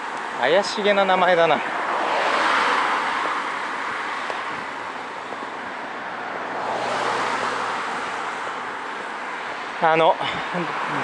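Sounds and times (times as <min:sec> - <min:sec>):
cars passing close by: 0:00.0 - 0:11.0.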